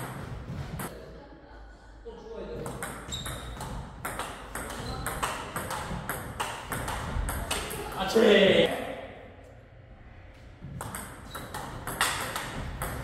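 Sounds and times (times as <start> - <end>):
ping-pong ball bouncing on table: 2.6 - 8.0, 10.8 - 13.0
ping-pong ball hits: 2.6 - 8.1, 10.8 - 13.0.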